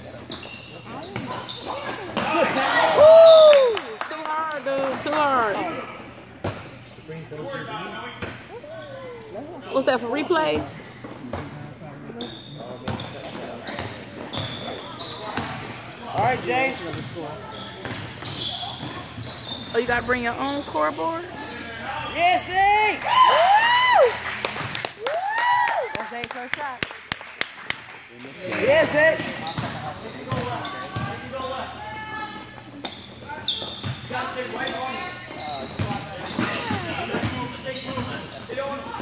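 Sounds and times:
sneaker squeaks: 0.0s - 2.9s, 6.4s - 9.1s, 10.3s - 22.1s, 28.6s - 39.0s.

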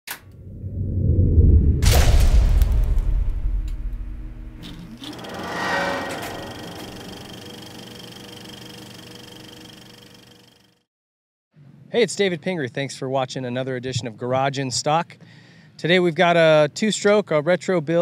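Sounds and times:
deep rumble: 0.3s - 7.6s
rising whoosh: 0.4s - 7.8s.

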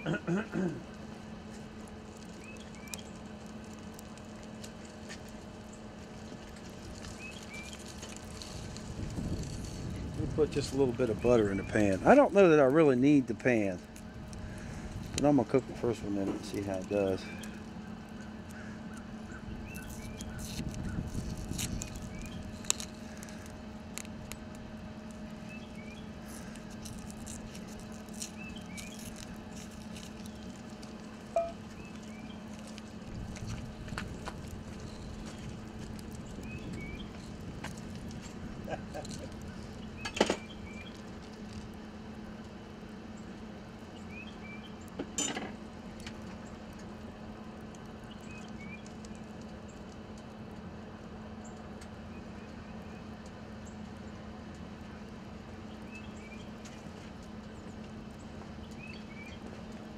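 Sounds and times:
steady low hum: 0.0s - 59.9s
butter crackling in skillet: 16.4s - 41.8s.

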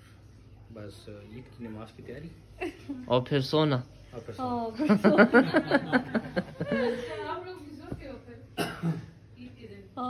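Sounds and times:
person coughing: 8.6s - 9.2s.

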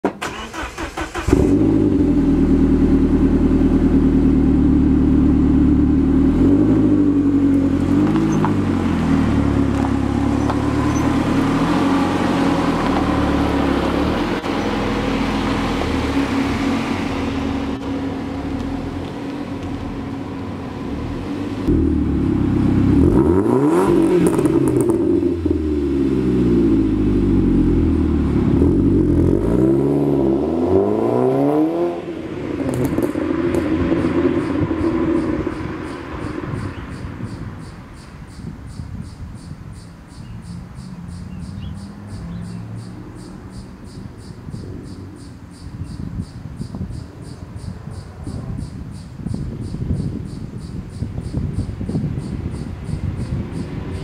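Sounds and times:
turbocharged car engine revving: 0.2s - 37.3s.

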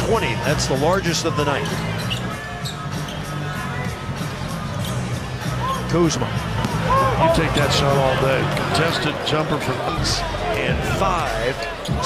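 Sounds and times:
arena music: 0.0s - 12.0s
crowd noise: 0.0s - 12.0s.

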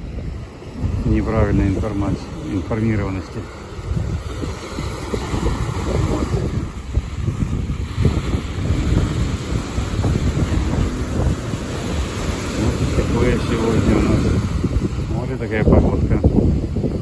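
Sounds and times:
ocean surf breaking: 0.0s - 17.0s
wind buffeting microphone: 0.0s - 17.0s.

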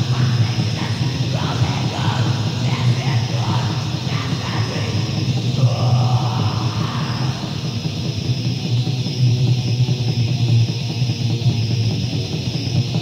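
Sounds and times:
lo-fi black metal music: 0.0s - 13.0s.

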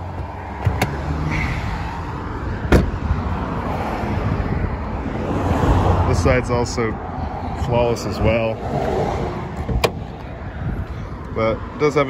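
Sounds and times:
car hood latch click: 0.6s - 1.0s, 9.7s - 10.1s.

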